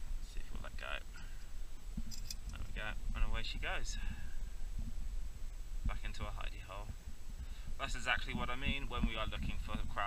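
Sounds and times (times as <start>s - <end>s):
steady low rumble: 0.0s - 10.0s
man talking: 0.2s - 1.1s, 2.5s - 4.3s, 5.8s - 7.0s, 7.8s - 10.0s.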